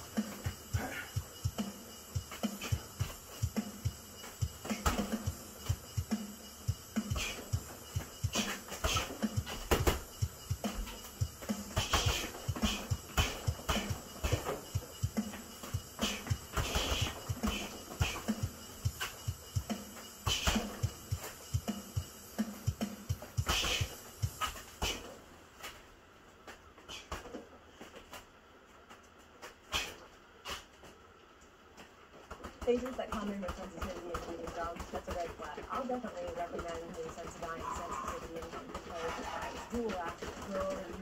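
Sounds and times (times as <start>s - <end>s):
sharp hissing exhales: 0.0s - 25.2s, 29.6s - 30.8s
footwork on matted floor: 0.0s - 41.0s
gloved punches on punching bag: 4.6s - 6.3s, 8.2s - 21.7s, 22.8s - 25.0s.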